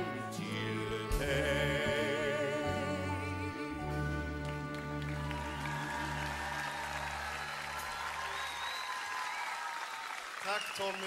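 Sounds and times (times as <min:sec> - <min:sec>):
crowd applauding: 0:04.0 - 0:11.0.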